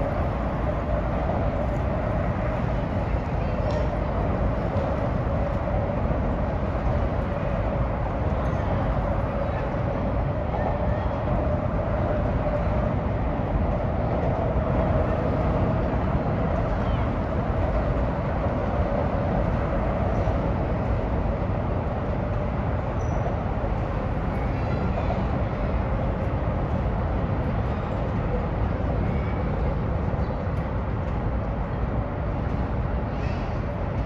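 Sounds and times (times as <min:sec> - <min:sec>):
road traffic drone: 0:00.0 - 0:34.0.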